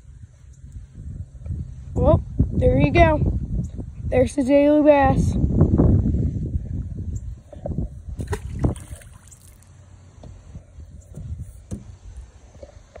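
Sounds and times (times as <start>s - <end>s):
splash in water: 8.2s - 9.7s.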